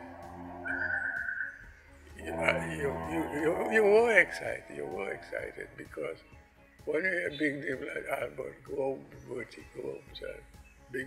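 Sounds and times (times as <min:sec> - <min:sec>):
high warbling whistle-like note: 0:00.0 - 0:02.6
soft background music: 0:00.0 - 0:11.0.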